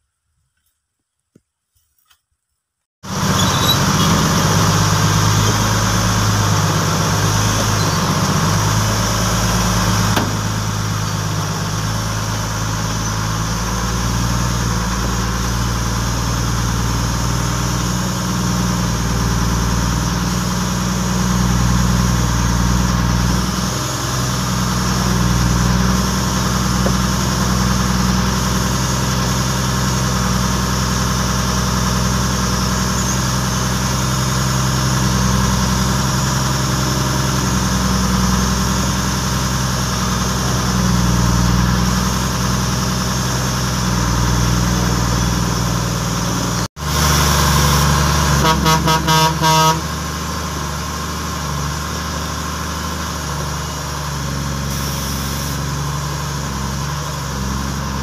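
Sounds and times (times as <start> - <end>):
vehicle engine running: 3.0 - 58.0.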